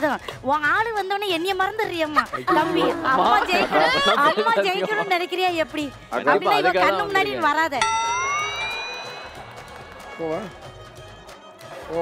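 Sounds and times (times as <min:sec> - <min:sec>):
bright ringing tone sliding up: 0:07.8 - 0:10.0.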